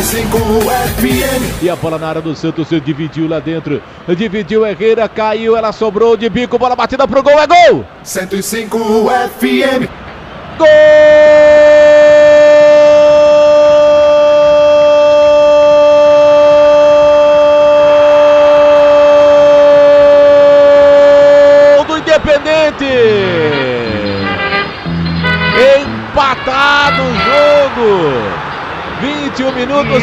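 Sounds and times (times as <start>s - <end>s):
radio station jingle: 0.0s - 2.5s, 8.1s - 9.9s, 23.1s - 28.2s, 29.7s - 30.0s
narrator shouting goal: 10.6s - 24.4s, 25.4s - 28.4s, 29.0s - 30.0s.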